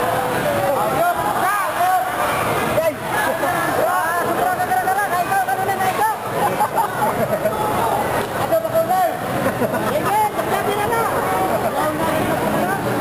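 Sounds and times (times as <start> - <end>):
crowd shouting and chattering: 0.0 - 13.0.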